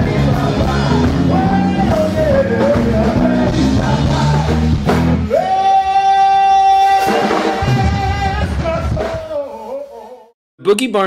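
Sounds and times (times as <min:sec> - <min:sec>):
band playing: 0:00.0 - 0:10.1.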